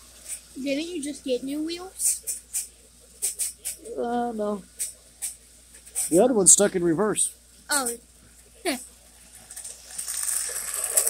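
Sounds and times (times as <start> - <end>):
toy train wheels clattering on track: 9.4 - 11.0.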